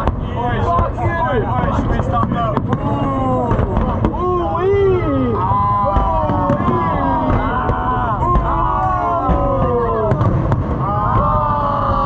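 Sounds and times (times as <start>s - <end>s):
fireworks rumbling and cracking: 0.0s - 12.0s
people talking: 0.0s - 12.0s.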